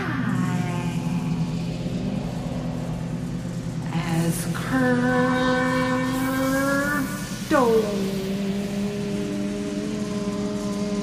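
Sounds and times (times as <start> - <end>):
low sustained music drone: 0.0 - 11.0.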